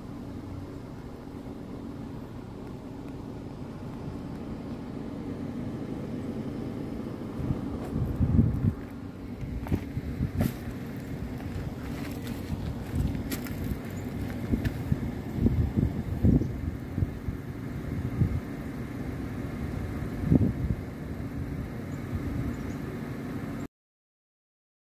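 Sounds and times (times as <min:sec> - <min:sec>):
low outdoor rumble: 0:00.0 - 0:23.7.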